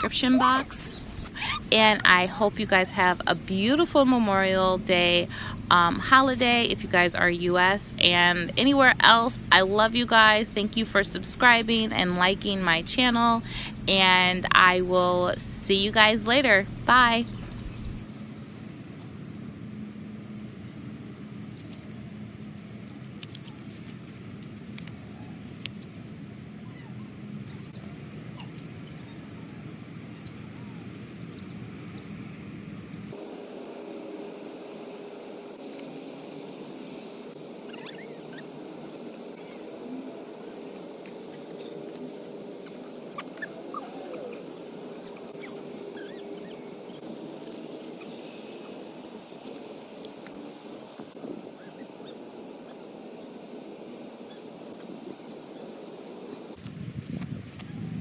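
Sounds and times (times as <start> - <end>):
birds chirping: 0.0 - 56.6.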